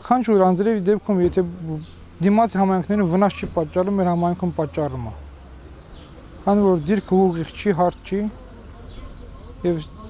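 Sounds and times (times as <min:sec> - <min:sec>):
man speaking: 0:00.0 - 0:05.2, 0:06.4 - 0:08.5, 0:09.5 - 0:10.0.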